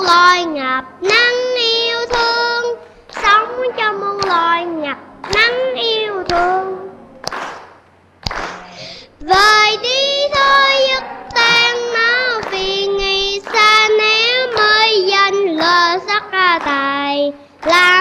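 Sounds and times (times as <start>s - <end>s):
child singing: 0.0s - 7.1s, 9.2s - 18.0s
hands clapping: 1.0s - 9.6s, 10.3s - 18.0s.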